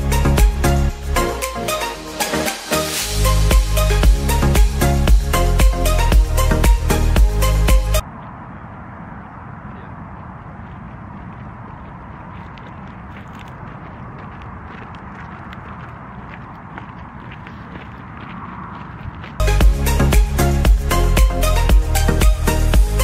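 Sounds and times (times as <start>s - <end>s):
electronic dance music: 0.0s - 8.0s, 19.4s - 23.0s
wind noise on microphone: 3.0s - 23.0s.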